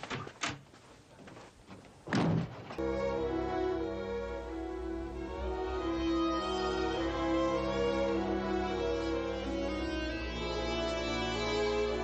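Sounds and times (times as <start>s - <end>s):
orchestral string music: 2.8s - 12.0s.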